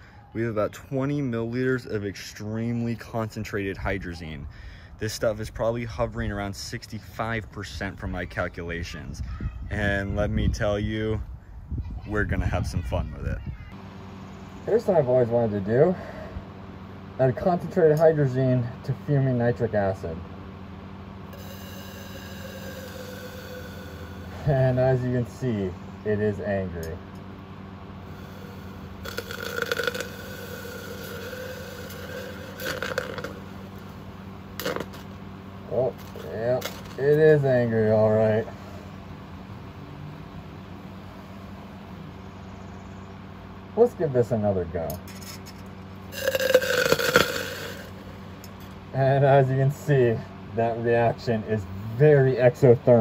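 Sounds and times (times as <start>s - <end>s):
steady pitched hum: 0.0s - 53.0s
high hiss and whine: 21.3s - 27.0s, 28.0s - 38.4s, 46.1s - 48.1s.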